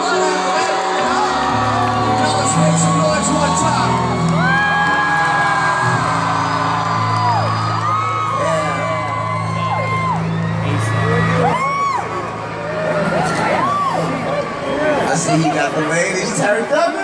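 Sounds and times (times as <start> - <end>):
crowd whooping and cheering: 0.0 - 17.0.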